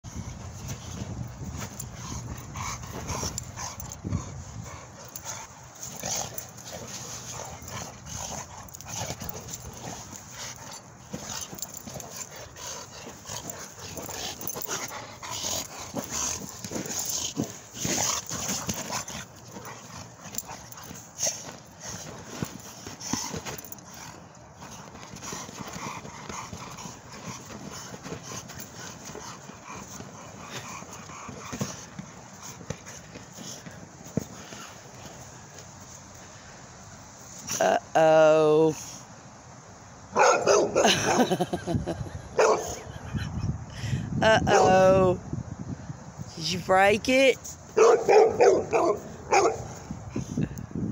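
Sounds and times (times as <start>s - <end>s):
dog noises: 0.1s - 35.6s, 40.1s - 43.5s, 44.4s - 44.8s, 47.7s - 50.0s
ball and paws scuffing on dirt: 0.1s - 37.6s.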